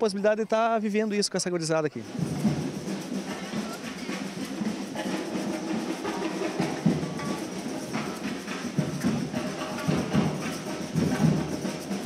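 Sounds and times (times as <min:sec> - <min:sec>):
drums and hand percussion: 0:00.9 - 0:12.0.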